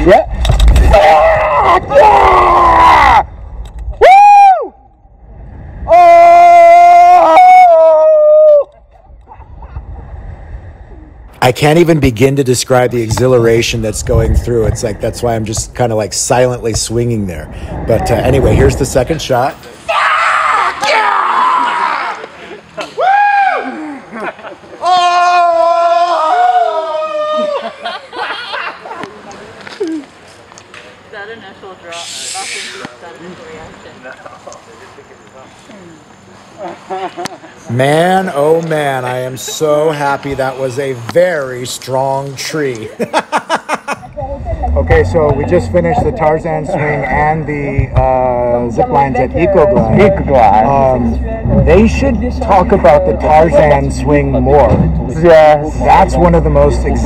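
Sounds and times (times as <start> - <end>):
person screaming: 0.8 - 3.3, 5.9 - 8.7, 24.8 - 27.8.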